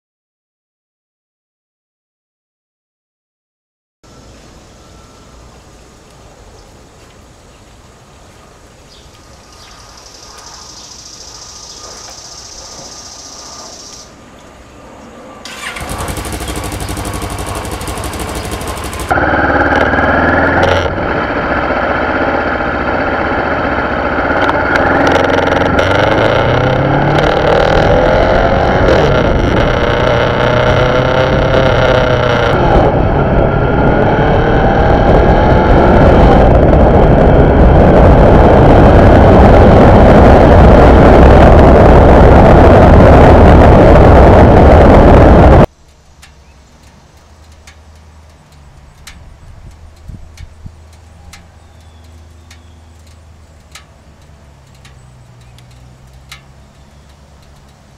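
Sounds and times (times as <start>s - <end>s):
motorcycle engine revving: 15.4s - 45.7s, 46.3s - 57.9s
wind noise: 15.5s - 45.7s, 48.7s - 52.1s.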